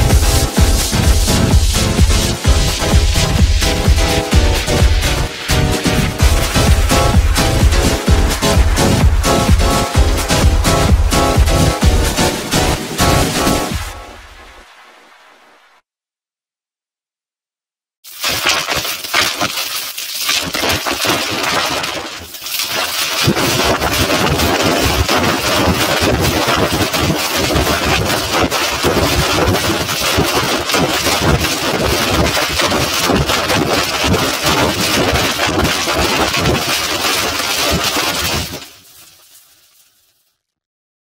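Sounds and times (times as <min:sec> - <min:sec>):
heavily distorted gritty noise: 0:00.0 - 0:14.5.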